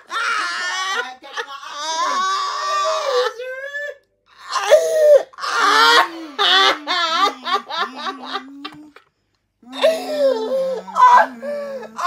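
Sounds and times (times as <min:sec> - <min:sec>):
man laughing: 0:00.0 - 0:02.2, 0:06.0 - 0:09.0
man wailing and shrieking: 0:00.0 - 0:09.0, 0:09.6 - 0:12.0.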